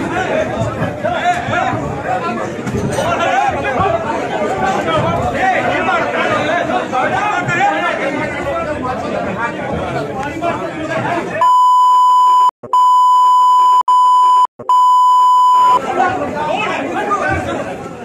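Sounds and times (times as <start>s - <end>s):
censor bleep: 11.4s - 15.8s.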